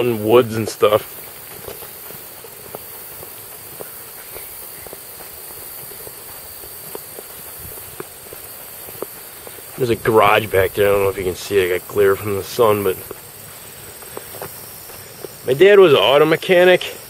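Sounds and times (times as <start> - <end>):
soft footsteps walking: 0.0 - 17.0
steady background hiss: 0.0 - 17.0.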